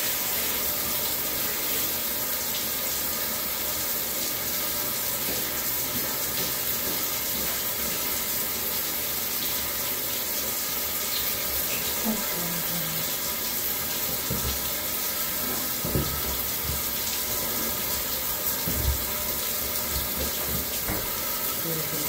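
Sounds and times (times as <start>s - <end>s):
shower sprayer spraying water: 0.0s - 22.0s.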